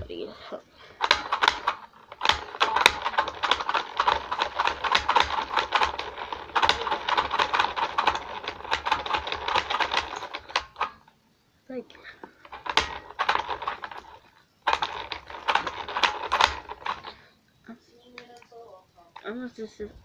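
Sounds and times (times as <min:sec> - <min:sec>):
faint steady hum: 0:00.0 - 0:20.0
rapid plastic clicks rattling: 0:00.9 - 0:11.1, 0:12.2 - 0:17.2.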